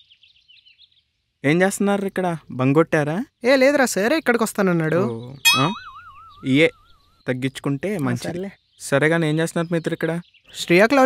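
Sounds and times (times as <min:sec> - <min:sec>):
cartoon boing sound effect: 0:05.5 - 0:06.2.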